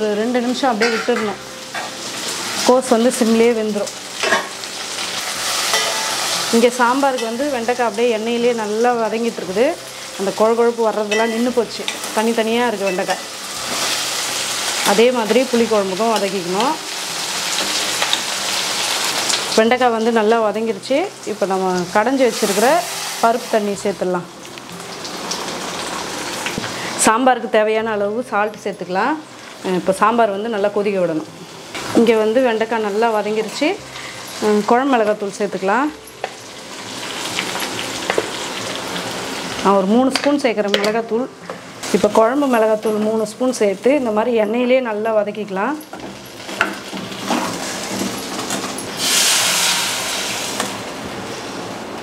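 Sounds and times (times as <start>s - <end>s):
vegetables frying in oil: 0.0s - 27.6s, 28.2s - 52.0s
food sizzling on a stove: 0.0s - 52.0s
water hissing in hot pan: 21.6s - 23.8s, 46.3s - 51.7s.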